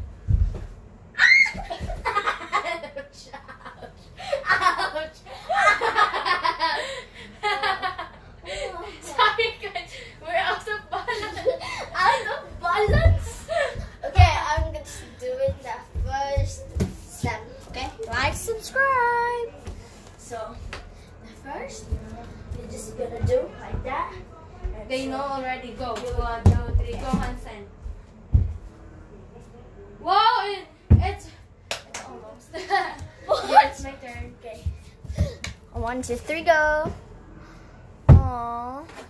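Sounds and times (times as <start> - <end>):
bare feet thumping on floor: 12.5 - 18.3, 26.0 - 28.6, 30.9 - 31.2, 34.6 - 36.0.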